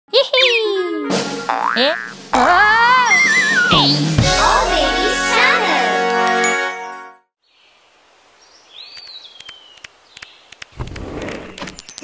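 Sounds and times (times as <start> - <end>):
springy boing: 1.5 - 2.7
falling pitch glide: 1.8 - 4.2.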